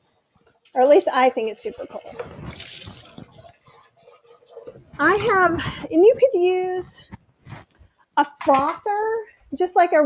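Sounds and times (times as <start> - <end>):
water running and dripping in sink: 0.0 - 5.1.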